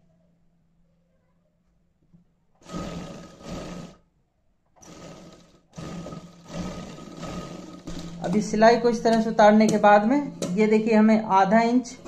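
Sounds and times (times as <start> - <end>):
sewing machine motor whine: 2.6 - 4.0, 4.8 - 8.3.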